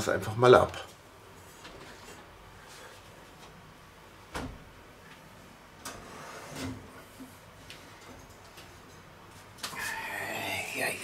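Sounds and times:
oven rack scraping on runners: 0:05.9 - 0:07.1.

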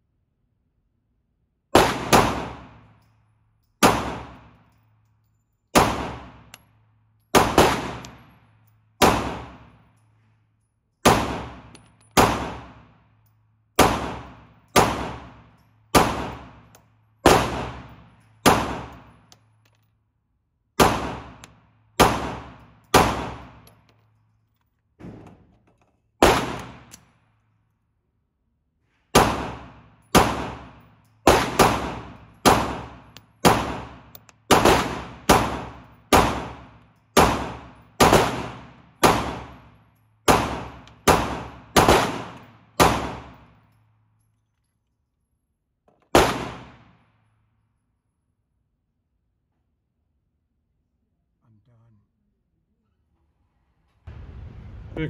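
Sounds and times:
pistol shots echoing indoors: 0:01.6 - 0:20.0, 0:20.7 - 0:24.4, 0:26.2 - 0:27.7, 0:29.0 - 0:44.3, 0:46.1 - 0:48.2
low hum: 0:53.9 - 0:55.0.

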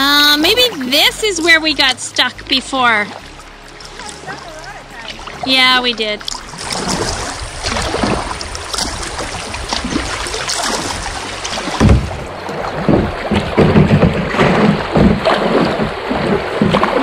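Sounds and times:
river water splashing against kayak: 0:00.2 - 0:17.0
paddle splashes: 0:02.6 - 0:17.0
wind buffeting microphone: 0:06.4 - 0:17.0.

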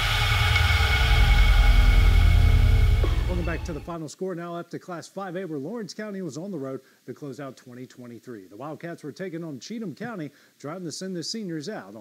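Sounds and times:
low bass rumble: 0:00.0 - 0:04.0
sustained synth chord: 0:00.0 - 0:04.0.

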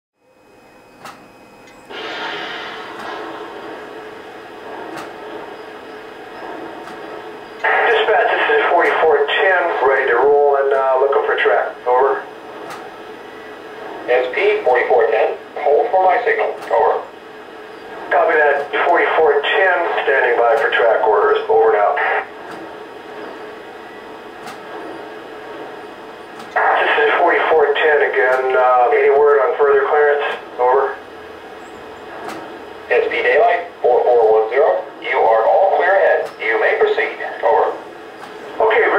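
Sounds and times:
radio hiss: 0:01.9 - 0:38.9
two-way radio voice: 0:07.6 - 0:12.3, 0:14.1 - 0:17.0, 0:18.1 - 0:22.3, 0:26.6 - 0:31.0, 0:32.9 - 0:37.8, 0:38.6 - 0:38.9.

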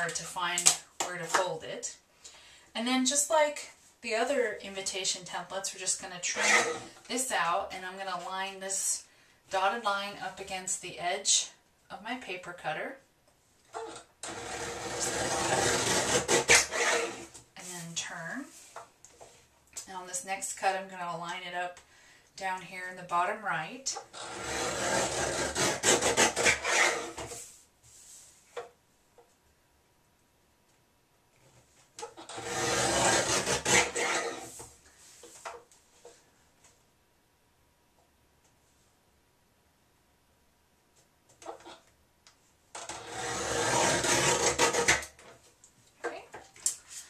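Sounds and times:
paper rasping on cutter board: 0:14.3 - 0:17.3, 0:24.2 - 0:27.4, 0:32.3 - 0:34.6, 0:42.9 - 0:45.1.

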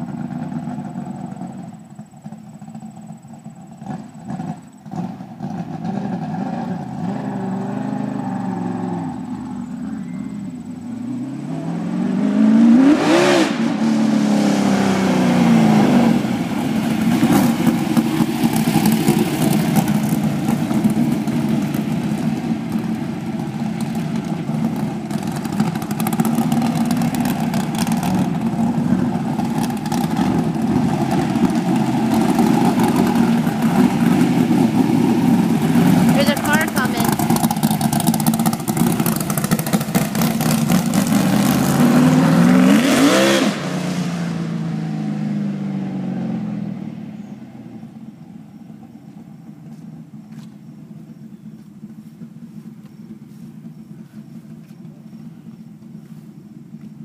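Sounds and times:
race car engine revving: 0:03.8 - 0:47.0.

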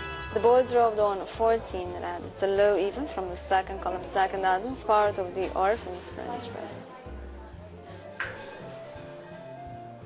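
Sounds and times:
bright chime: 0:00.0 - 0:01.0.

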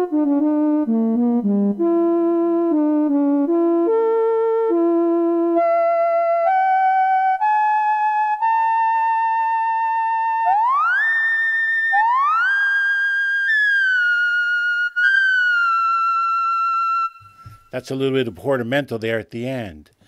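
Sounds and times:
synthesizer lead line: 0:09.4 - 0:14.0.

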